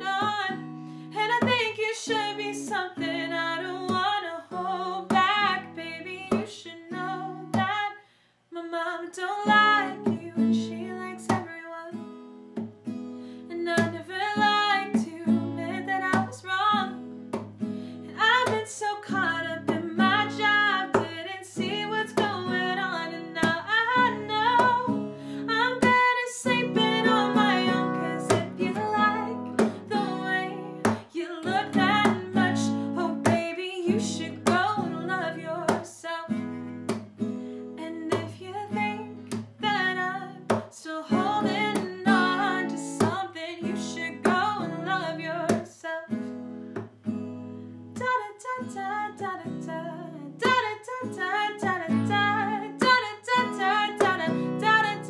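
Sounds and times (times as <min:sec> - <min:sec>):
strummed acoustic guitar: 0:00.0 - 0:07.9, 0:09.4 - 0:55.0
woman singing: 0:00.0 - 0:12.1, 0:13.4 - 0:46.3, 0:47.9 - 0:55.0.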